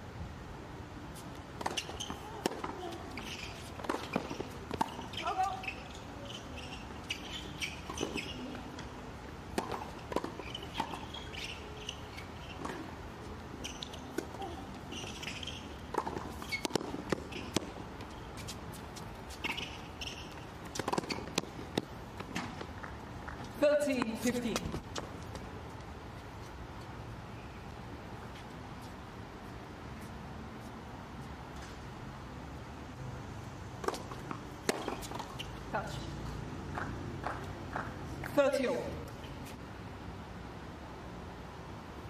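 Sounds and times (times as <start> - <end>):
tennis balls struck by rackets: 1.5 - 5.8, 6.7 - 13.0, 13.8 - 18.5, 19.3 - 25.0, 33.8 - 35.9
balls bouncing on hard court: 1.6 - 8.9, 9.5 - 12.9, 13.6 - 18.5, 19.3 - 25.1, 33.8 - 35.6, 36.6 - 38.4.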